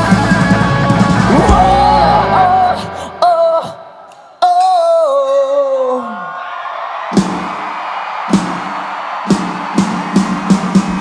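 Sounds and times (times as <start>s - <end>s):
crowd cheering: 0.0s - 2.8s, 5.7s - 11.0s
shouted vocal note sliding down: 1.3s - 3.6s
drum hits building into full kit: 7.2s - 7.7s, 8.3s - 11.0s.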